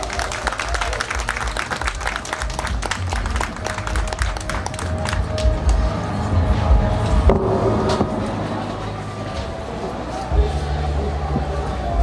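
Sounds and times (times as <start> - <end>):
audience applauding: 0.0 - 5.9.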